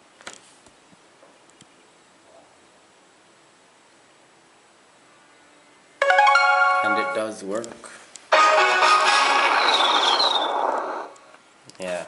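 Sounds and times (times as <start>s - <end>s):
high whistle-like glide: 9.0s - 11.2s.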